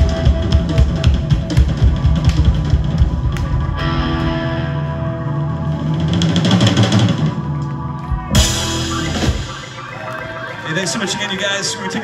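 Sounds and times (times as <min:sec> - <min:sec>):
drum beat: 0:00.0 - 0:03.8, 0:08.2 - 0:11.8
live rock band playing: 0:00.0 - 0:12.0.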